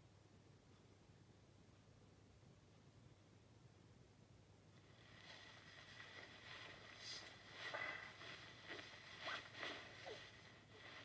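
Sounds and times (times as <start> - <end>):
faint rustles: 4.7 - 11.0.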